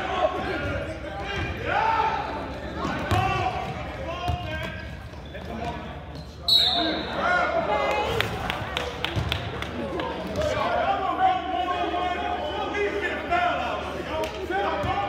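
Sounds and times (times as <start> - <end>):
shouted voices in large hall: 0.0 - 15.0
basketball bouncing on gym floor: 3.0 - 4.8.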